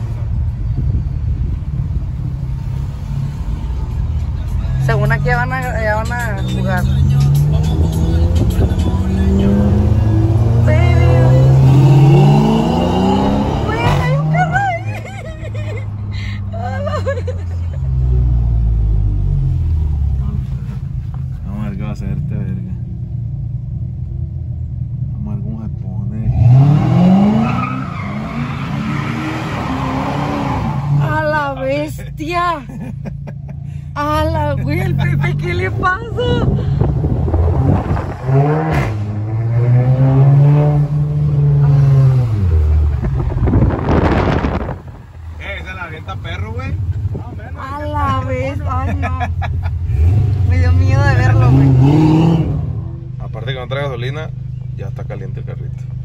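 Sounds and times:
car engine accelerating: 0.0 - 32.0, 32.7 - 56.0.

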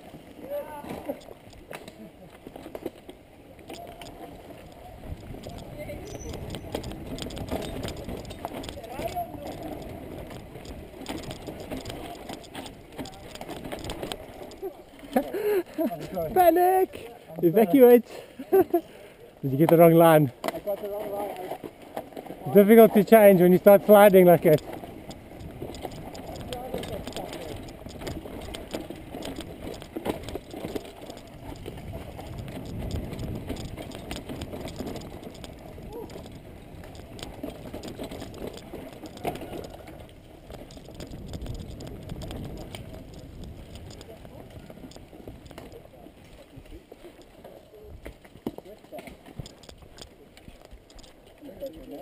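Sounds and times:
bike tyres rumbling on dirt: 0.0 - 17.6, 19.4 - 51.2
bike rattling over bumps: 0.0 - 18.0, 18.6 - 52.0
wind noise: 4.5 - 14.3, 22.9 - 45.9.

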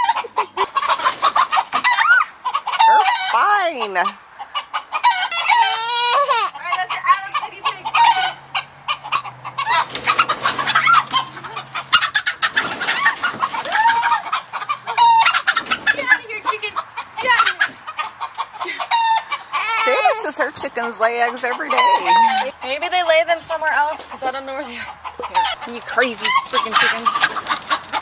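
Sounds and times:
chickens clucking and squawking: 0.0 - 28.0
scratching and rustling: 0.6 - 2.1, 9.0 - 28.0.

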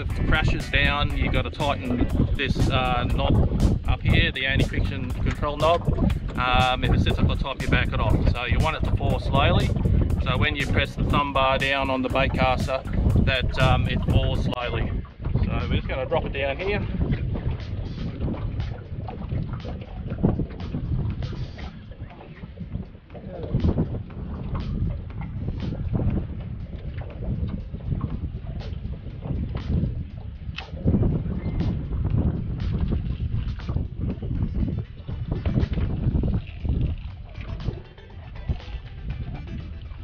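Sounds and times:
small waves slapping boat hull: 0.0 - 40.0
wind buffeting microphone: 0.0 - 40.0.

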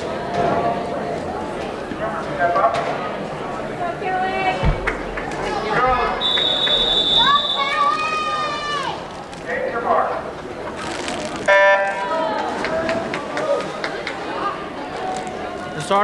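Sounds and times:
crowd talking: 0.0 - 16.0
long high whistle: 6.2 - 7.9.

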